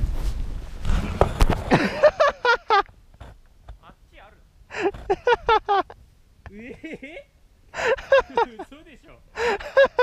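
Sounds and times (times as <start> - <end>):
person gasping breaths: 9.4 - 9.8.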